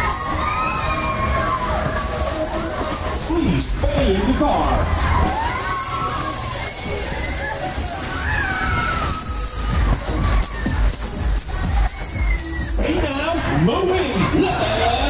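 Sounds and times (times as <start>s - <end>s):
loud ride music with singing: 0.0s - 15.0s
riders shouting and cheering: 0.0s - 15.0s.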